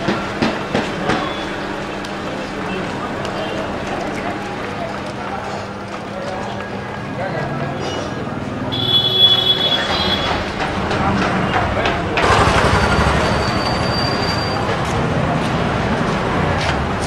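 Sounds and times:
steady background hum: 0.0 - 8.9
distant voices: 0.0 - 17.0.

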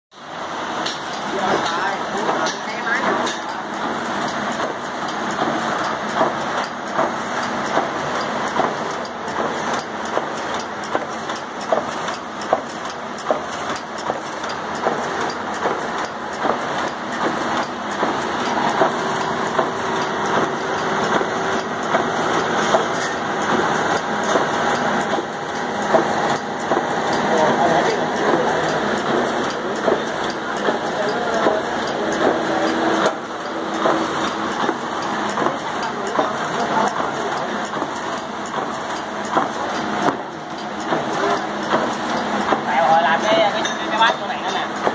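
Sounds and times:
machine running: 0.2 - 44.9
light mechanical clicks and knocks: 0.8 - 44.9.

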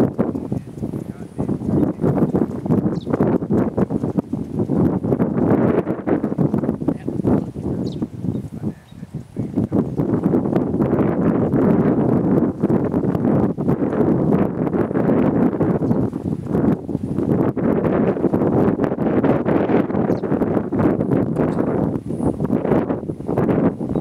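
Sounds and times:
horse-drawn mower clattering: 0.0 - 9.0.

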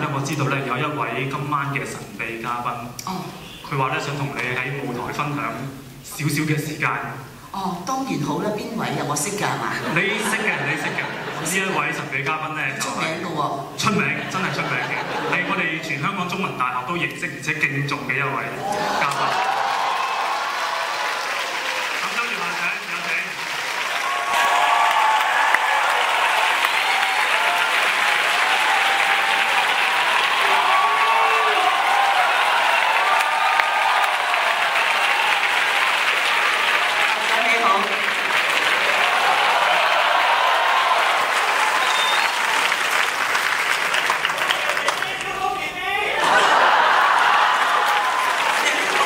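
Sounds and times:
audience applauding: 18.6 - 49.0.

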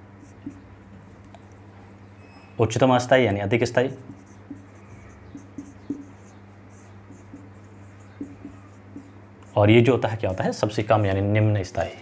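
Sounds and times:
low electrical hum: 0.0 - 12.0
marker writing on whiteboard: 0.2 - 0.6, 3.9 - 9.7.

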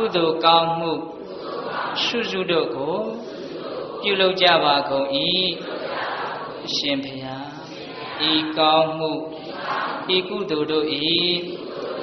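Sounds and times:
man chanting: 0.0 - 1.2, 2.0 - 3.3, 4.0 - 5.6, 6.7 - 9.3, 10.0 - 11.6.

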